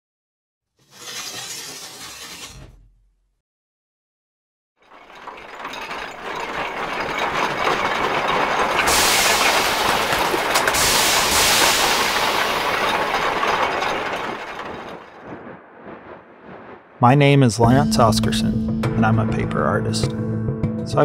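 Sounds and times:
gears and ratcheting machinery: 4.8 - 15.2
loud hiss: 8.9 - 12.3.

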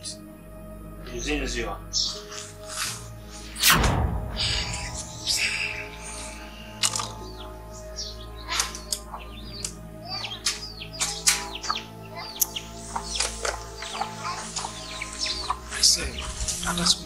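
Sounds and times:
birds chirping: 0.0 - 3.6, 4.4 - 17.0
soft background music drone: 0.0 - 17.0.

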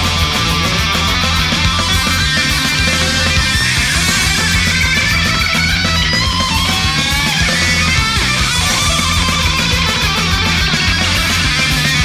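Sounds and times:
lead guitar bending pitch: 0.0 - 12.0
thrash metal song: 0.0 - 12.0.

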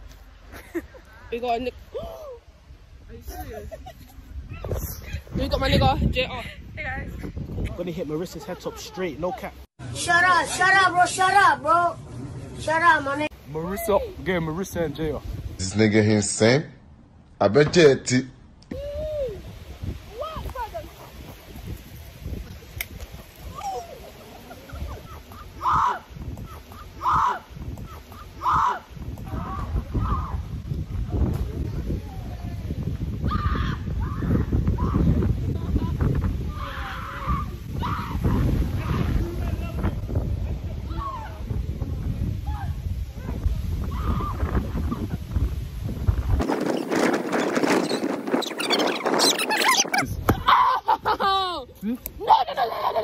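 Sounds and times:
low wind rumble on microphone: 1.8 - 8.3, 13.9 - 15.8, 18.7 - 52.8.

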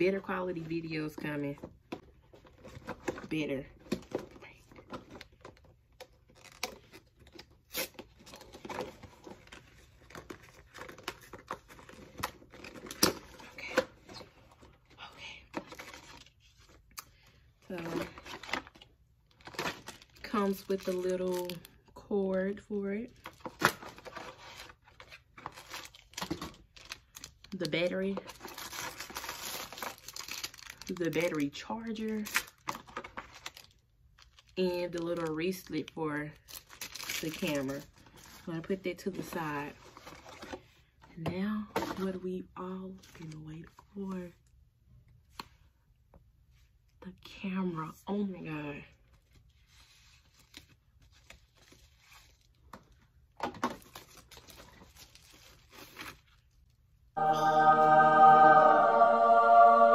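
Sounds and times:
plastic packaging crinkling: 17.7 - 21.8, 23.2 - 31.5, 32.1 - 38.5, 53.7 - 56.5.

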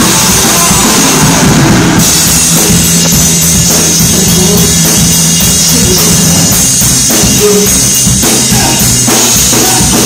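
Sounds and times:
drum hits: 0.0 - 10.0
loud live rock band: 0.0 - 10.0.

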